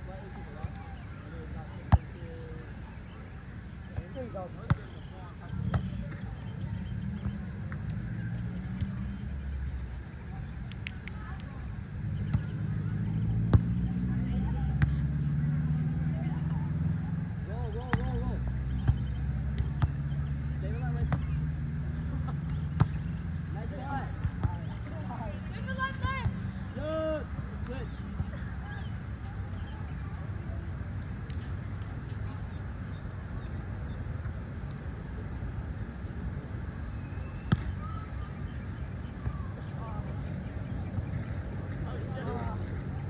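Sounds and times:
faint bird chirps: 36.6s - 41.3s.

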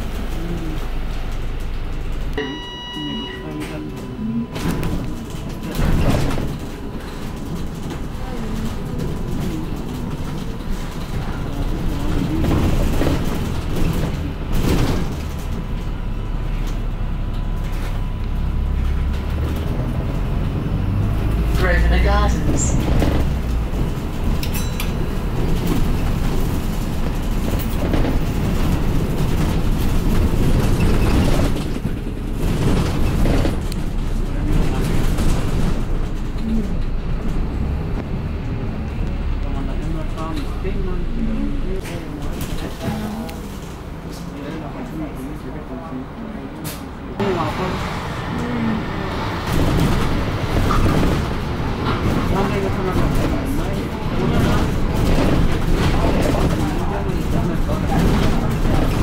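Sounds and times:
bus engine rumble: 0.0s - 59.0s
electronic beep: 2.4s - 4.9s.

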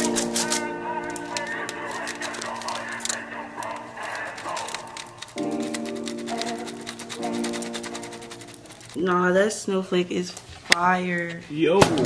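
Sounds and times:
held chord: 0.0s - 3.9s
fast ticking beat: 1.2s - 9.0s.

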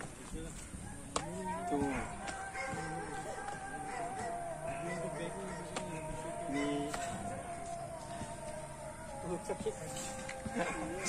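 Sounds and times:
faint steady background tones: 0.0s - 11.0s
man counting aloud: 0.4s - 10.0s.

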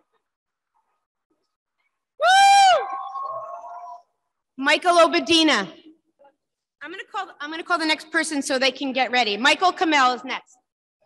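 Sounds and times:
person whooping: 2.2s - 4.2s.

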